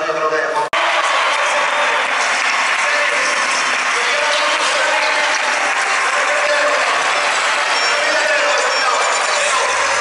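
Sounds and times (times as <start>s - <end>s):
crowd applauding: 0.8s - 10.0s.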